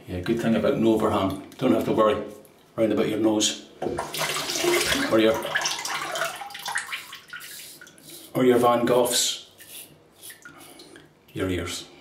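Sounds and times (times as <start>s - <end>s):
tap water running into sink: 3.8s - 7.6s.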